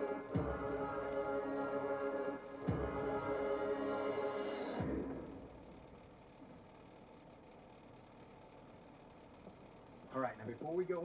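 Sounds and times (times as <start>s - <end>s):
title music: 0.0s - 6.0s
faint background hum: 0.0s - 11.0s.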